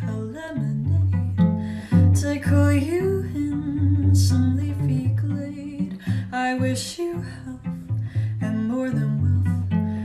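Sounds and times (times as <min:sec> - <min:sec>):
pizzicato cello: 0:00.0 - 0:10.0
woman singing: 0:00.0 - 0:10.0.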